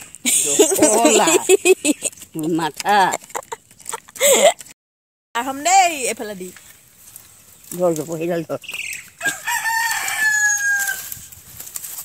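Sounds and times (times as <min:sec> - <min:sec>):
rooster crowing: 0:09.2 - 0:11.2.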